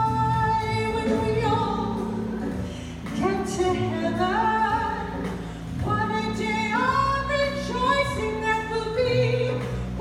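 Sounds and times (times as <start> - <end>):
woman singing a hymn: 0.0 - 9.8.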